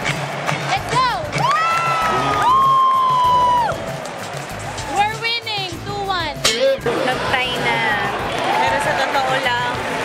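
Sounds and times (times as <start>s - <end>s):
arena crowd cheering: 0.0s - 5.5s, 7.4s - 10.0s
high-pitched whoops: 1.4s - 4.0s.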